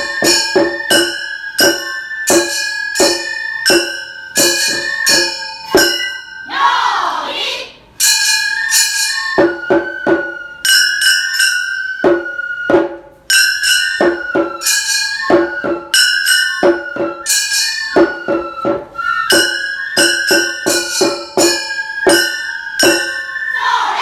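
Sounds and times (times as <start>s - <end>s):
bamboo flute holding notes: 0.0s - 6.2s, 8.4s - 13.3s, 14.0s - 24.0s
small gongs ringing: 0.0s - 6.8s, 7.9s - 18.7s, 19.3s - 23.6s
taiko drum strokes: 0.0s - 7.2s, 8.0s - 24.0s.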